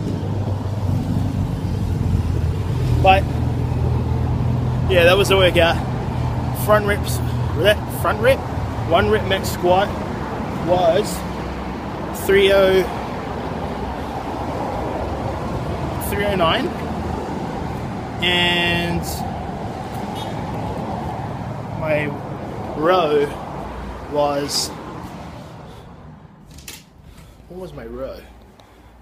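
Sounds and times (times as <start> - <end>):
motor vehicle engine rumble: 0.0 - 27.5.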